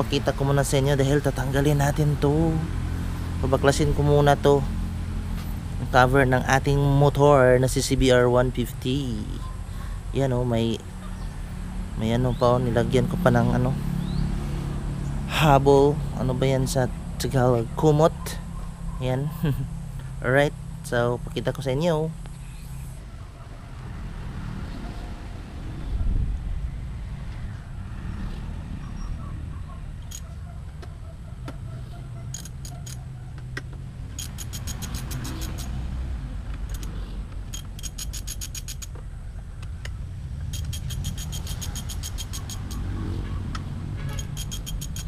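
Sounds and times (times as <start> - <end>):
hand ratchet clicking: 32.3 - 33.0, 34.1 - 35.8, 36.7 - 39.0, 40.5 - 42.9, 44.2 - 45.0.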